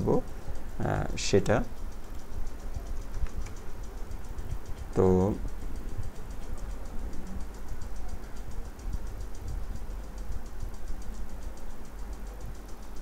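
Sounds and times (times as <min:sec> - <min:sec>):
faint ticking: 0:00.0 - 0:13.0
low background hum: 0:00.0 - 0:13.0.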